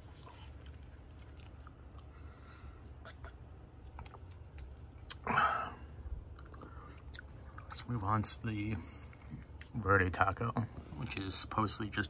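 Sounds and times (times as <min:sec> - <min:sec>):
chewing: 0:00.0 - 0:02.2, 0:02.8 - 0:05.3, 0:06.3 - 0:07.8
low steady hum: 0:00.0 - 0:12.0.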